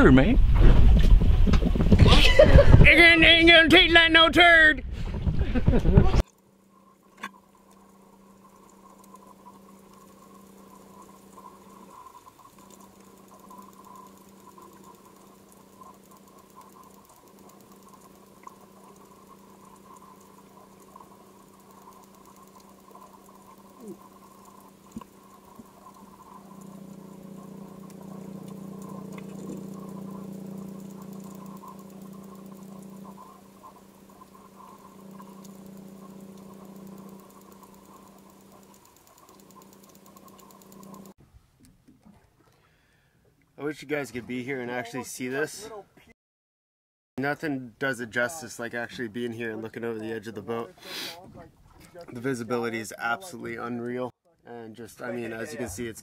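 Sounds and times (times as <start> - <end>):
low underwater hum: 0.0 - 3.6, 4.8 - 43.6, 49.0 - 53.6
clicking and crackling: 5.7 - 42.6.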